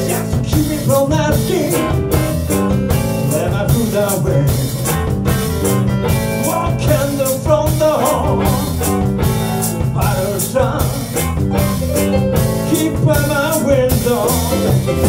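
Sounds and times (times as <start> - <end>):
blues band playing: 0.0 - 15.0
drum kit beat: 0.0 - 15.0
electric guitar: 0.0 - 15.0
keyboard: 0.0 - 15.0.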